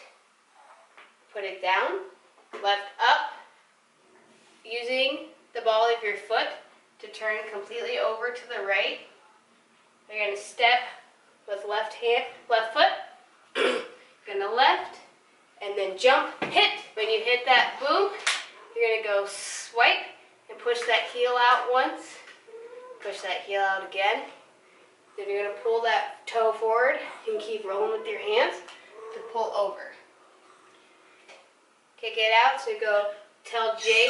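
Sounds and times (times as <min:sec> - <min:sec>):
woman speaking: 0:01.4 - 0:03.5, 0:04.7 - 0:09.1, 0:10.1 - 0:13.2, 0:14.3 - 0:18.2, 0:18.8 - 0:22.3, 0:23.0 - 0:24.3, 0:25.2 - 0:30.0, 0:32.0 - 0:34.0.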